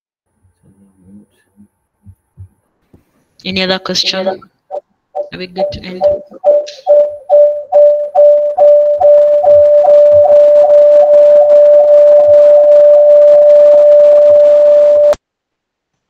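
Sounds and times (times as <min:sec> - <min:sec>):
audio feedback howl: 0:03.8 - 0:15.2.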